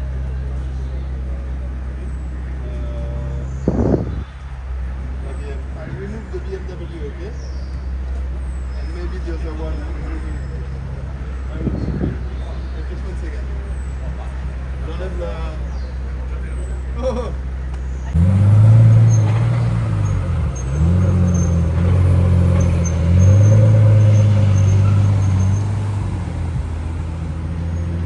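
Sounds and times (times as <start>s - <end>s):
bystanders talking: 0.0s - 28.0s
engine revving bursts: 18.1s - 26.6s.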